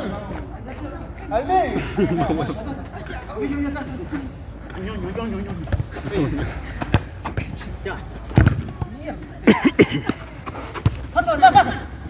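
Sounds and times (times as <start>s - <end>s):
football kicks on artificial turf: 8.3s - 9.0s.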